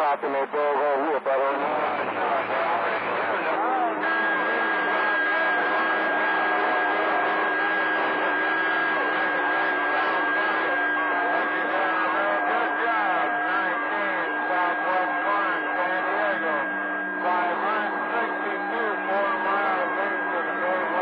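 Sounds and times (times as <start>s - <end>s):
garbled overlapping radio voices: 0.0s - 21.0s
radio static: 0.0s - 21.0s
high radio whistle: 1.5s - 21.0s.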